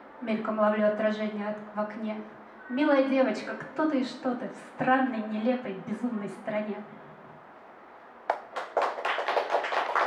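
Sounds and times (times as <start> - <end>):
audience applauding: 8.3 - 10.0.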